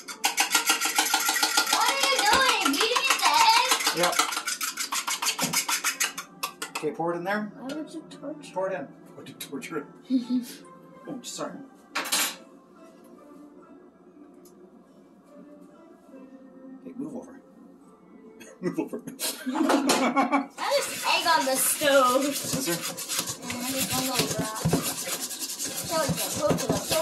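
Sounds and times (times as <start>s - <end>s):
whisk scraping metal bowl: 0.0s - 6.3s, 20.6s - 27.0s
faint background music: 0.0s - 27.0s
plastic container knocking metal bowl: 22.4s - 25.0s.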